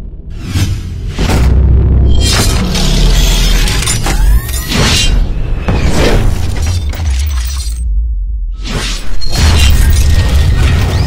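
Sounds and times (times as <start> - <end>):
deep bass rumble: 0.0 - 4.0.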